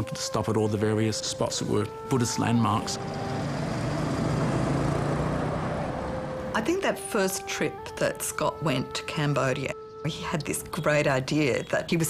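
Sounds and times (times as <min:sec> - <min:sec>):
road traffic noise: 0:01.3 - 0:12.0
low engine hum: 0:02.6 - 0:06.8.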